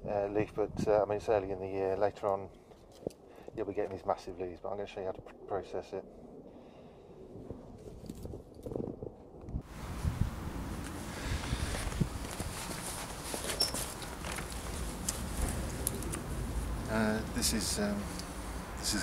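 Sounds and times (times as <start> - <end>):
steady background hiss: 9.7 - 19.0
footsteps: 11.4 - 16.4
rustling handling noise: 11.4 - 16.8.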